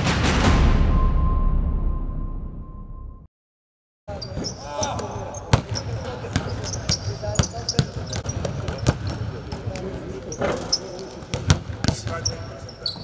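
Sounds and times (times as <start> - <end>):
players' voices: 4.1 - 13.0
basketballs bouncing on court: 4.4 - 10.0, 11.3 - 12.4.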